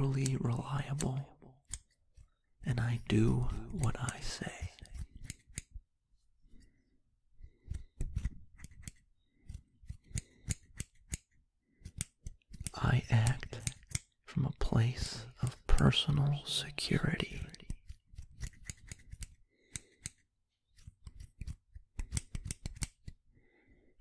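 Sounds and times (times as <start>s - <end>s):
soft-spoken voice: 0.0s - 1.6s, 2.6s - 5.0s, 12.7s - 17.8s
scissors snipping: 0.0s - 5.8s, 7.6s - 14.2s, 17.3s - 23.2s.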